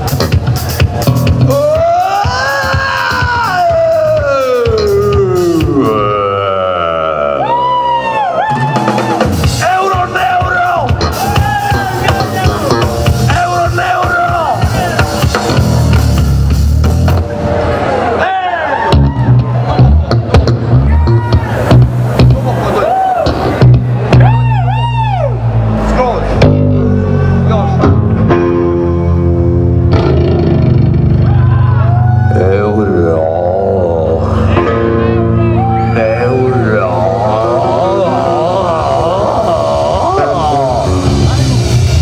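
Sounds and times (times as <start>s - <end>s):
live rock band playing: 0.0s - 6.4s, 7.7s - 42.0s
bass guitar: 0.0s - 18.2s, 18.8s - 42.0s
drum strokes: 8.5s - 17.4s, 19.0s - 24.5s
electric guitar: 18.8s - 42.0s.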